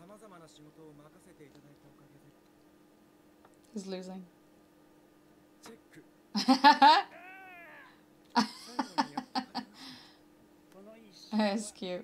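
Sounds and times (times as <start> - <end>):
woman laughing: 6.4 - 7.3, 8.4 - 9.9
high drawn-out call: 6.9 - 8.0.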